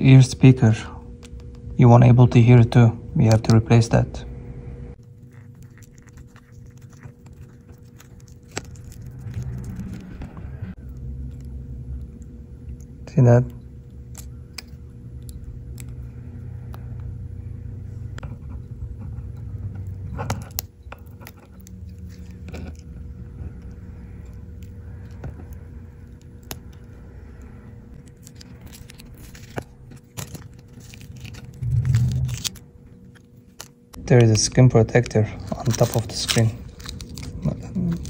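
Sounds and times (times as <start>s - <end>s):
steady low hum: 0.0s - 38.0s
low rumble: 6.2s - 13.0s, 23.0s - 33.1s.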